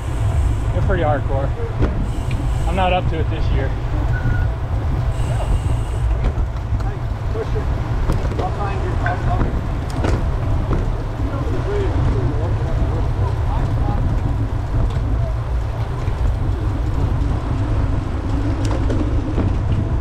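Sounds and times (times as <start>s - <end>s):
tyres humming on road: 0.0s - 20.0s
wind rumble on microphone: 0.0s - 20.0s.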